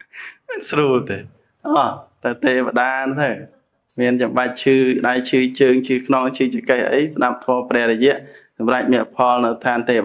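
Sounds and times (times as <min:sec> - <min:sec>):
man laughing: 0:00.0 - 0:00.8
man talking: 0:00.0 - 0:10.0
breathy intake: 0:08.2 - 0:08.6.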